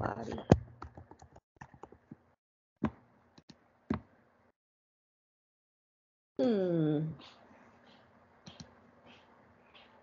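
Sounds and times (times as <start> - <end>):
computer mouse clicks: 8.5 - 9.2.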